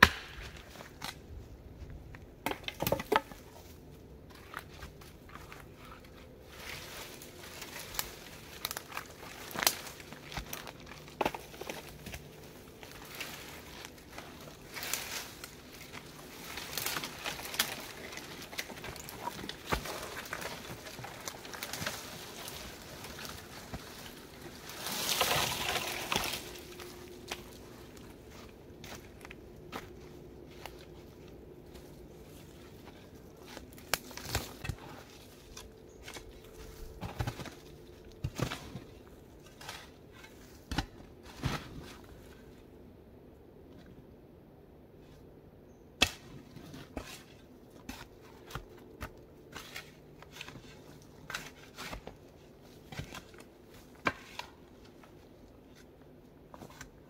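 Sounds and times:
rustling crash of branches: 12.9 - 27.6.

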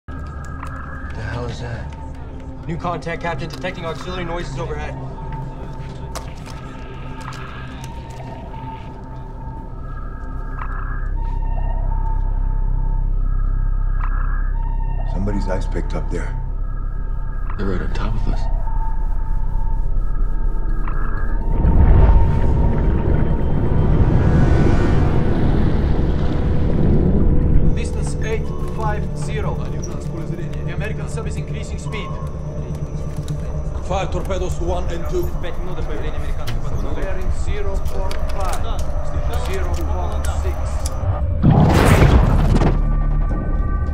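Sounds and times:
deep low drone: 3.3 - 43.9.

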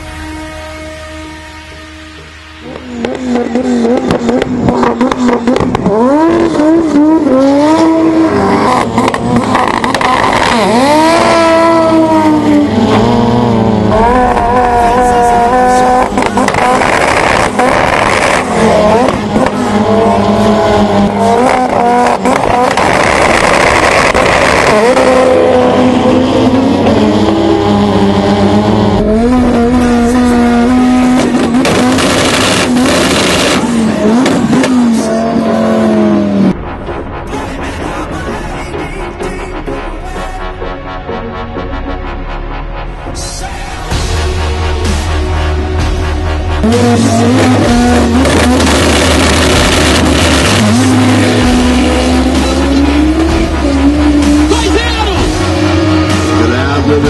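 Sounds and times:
car engine revving: 0.0 - 57.0
exhaust pops: 21.4 - 25.7, 46.6 - 53.5.

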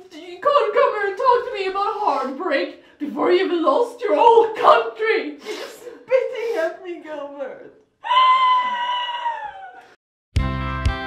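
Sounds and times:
person wailing high-pitched: 8.0 - 9.9.

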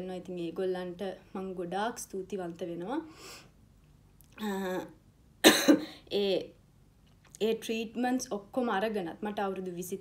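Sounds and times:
woman coughing: 5.4 - 6.0.

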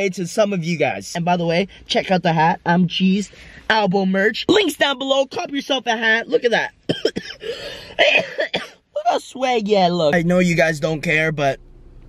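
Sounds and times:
man speaking: 0.0 - 6.8, 9.0 - 11.6
man coughing: 6.9 - 8.8.

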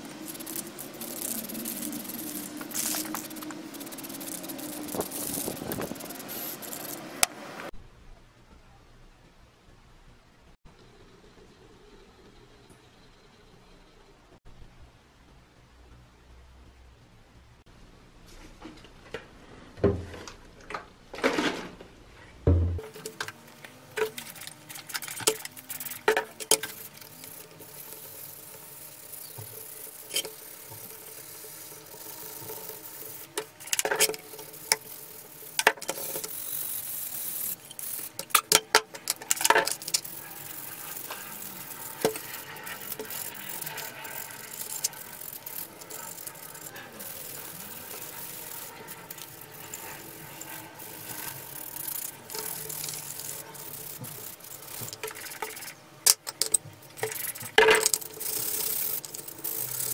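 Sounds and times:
sandpaper rubbing: 0.0 - 7.0.

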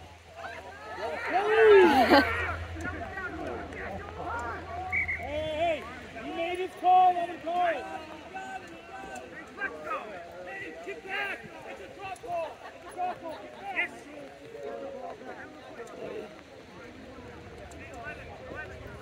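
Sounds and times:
voices shouting and calling out: 0.0 - 19.0.

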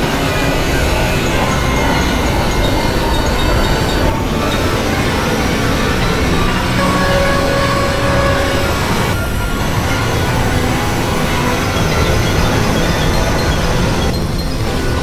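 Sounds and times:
electronic noise drone: 0.0 - 15.0
faint held tones: 0.6 - 14.8.

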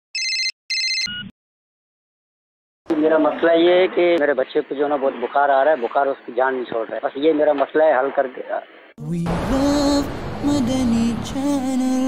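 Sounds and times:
electronic telephone ring: 0.2 - 1.3.

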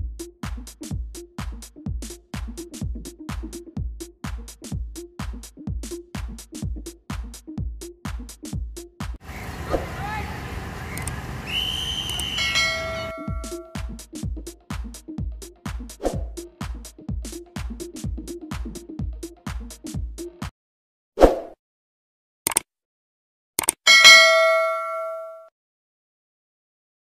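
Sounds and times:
outdoor field noise: 9.2 - 13.6, 24.0 - 25.4
electronic dance music: 12.1 - 13.8
notification bell chime: 12.4 - 13.8, 23.9 - 25.5.

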